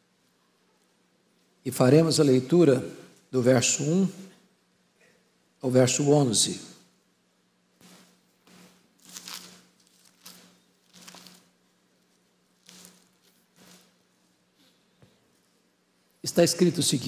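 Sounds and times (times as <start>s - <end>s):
faint steady hum: 0.0s - 17.0s
thin pages rustling: 7.8s - 14.3s.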